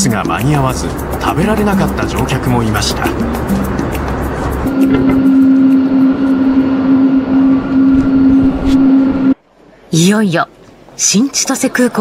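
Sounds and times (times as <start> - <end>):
jet engines droning: 0.2 - 9.4.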